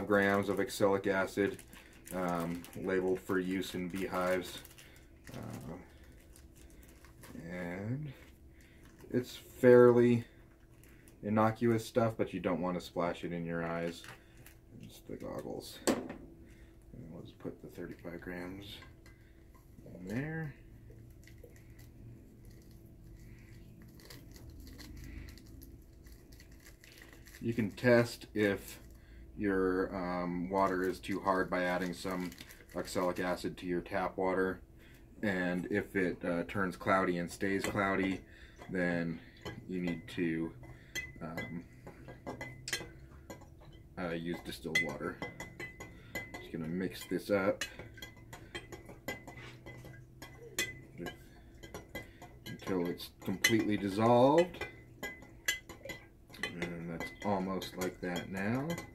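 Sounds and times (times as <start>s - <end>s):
paper packet crinkling: 0.2s - 7.4s, 23.8s - 27.8s, 30.6s - 33.2s
stirrer clinking against glass jar: 36.8s - 58.9s.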